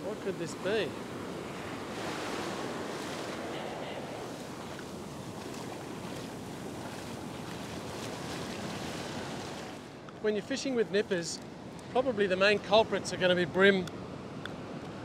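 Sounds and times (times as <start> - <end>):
ocean surf breaking: 0.0 - 11.3.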